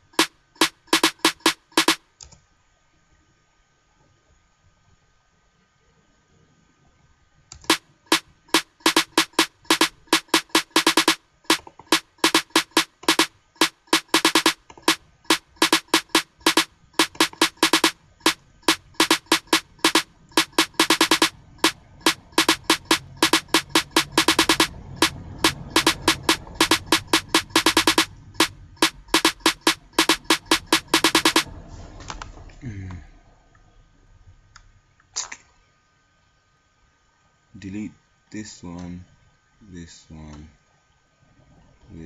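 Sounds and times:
snare and clap beat: 0:00.0 - 0:02.0, 0:07.6 - 0:31.5
low hum: 0:11.9 - 0:34.5.

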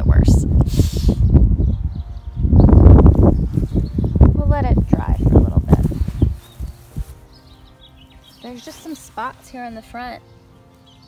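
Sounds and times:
loud low rumbling: 0:00.0 - 0:06.7.

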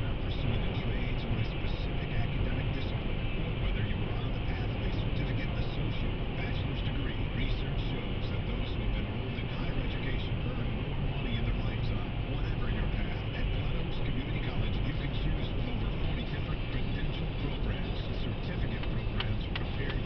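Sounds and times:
faint car radio: 0:00.0 - 0:20.0
road and engine noise in car: 0:00.0 - 0:20.0.

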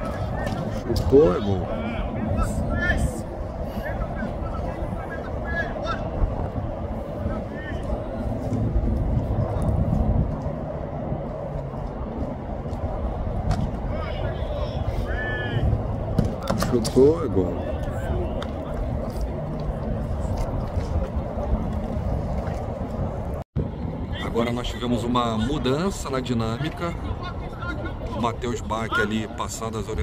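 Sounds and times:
steady low rumble: 0:00.0 - 0:16.4, 0:17.0 - 0:30.0
distant shouts and calls: 0:01.5 - 0:06.5, 0:13.8 - 0:16.5.

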